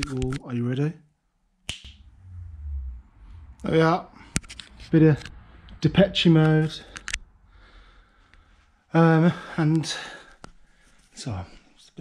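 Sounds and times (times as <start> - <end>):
finger snap: 1.6 - 2.0
faint low rumble: 1.7 - 9.2.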